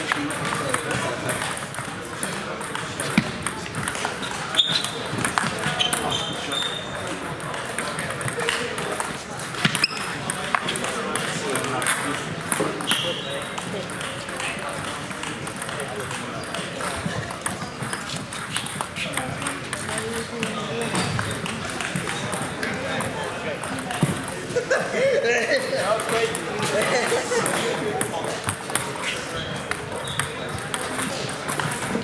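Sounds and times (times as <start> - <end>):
table tennis balls clicking: 0.0 - 24.5, 25.6 - 32.0
background chatter: 0.0 - 32.0.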